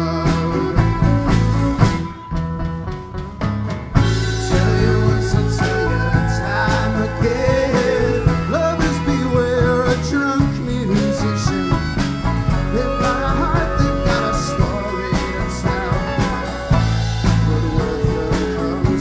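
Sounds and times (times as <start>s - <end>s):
fiddle: 0.0s - 3.1s, 4.0s - 19.0s
folk band playing: 0.0s - 19.0s
steady drum beat: 0.0s - 19.0s
banjo: 3.0s - 19.0s.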